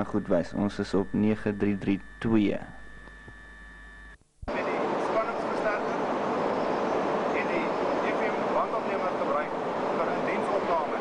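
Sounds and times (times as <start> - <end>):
work hall background noise: 4.4 - 11.0.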